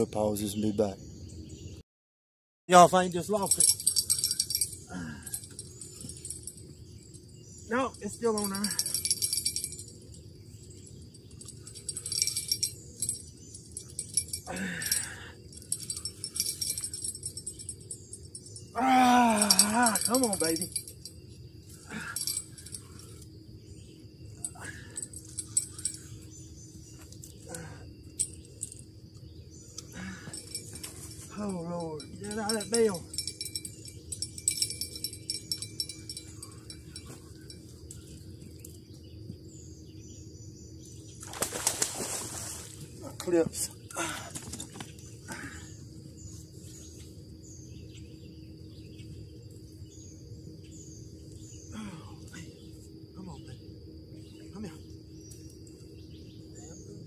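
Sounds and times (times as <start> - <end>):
faint bird chirps: 43.6 - 57.0.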